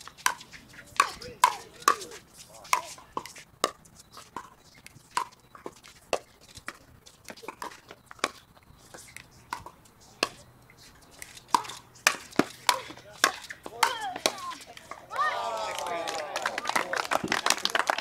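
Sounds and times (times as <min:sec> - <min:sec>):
paddles hitting plastic ball: 0:11.1 - 0:15.2.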